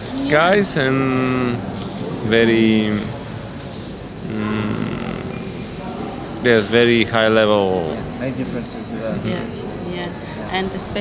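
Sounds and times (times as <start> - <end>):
steady background noise: 0.0 - 11.0
woman humming: 4.3 - 5.3.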